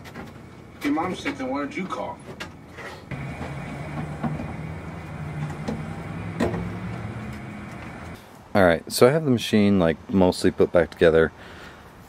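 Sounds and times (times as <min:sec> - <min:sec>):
low mechanical hum: 0:03.1 - 0:08.2.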